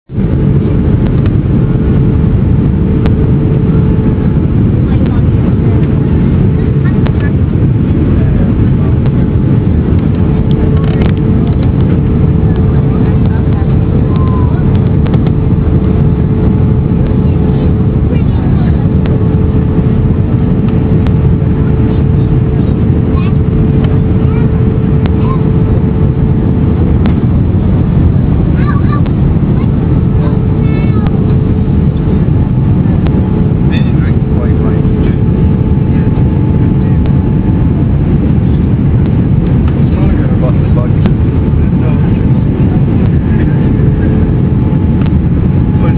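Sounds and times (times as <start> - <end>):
roar of engines and rushing air: 0.0 - 45.9
steady hum: 0.0 - 45.9.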